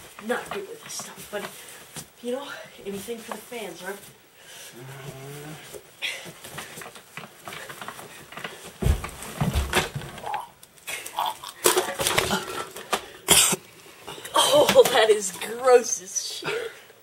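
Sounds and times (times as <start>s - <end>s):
boy retching and vomiting: 10.2s - 14.8s
boy coughing: 13.3s - 13.6s.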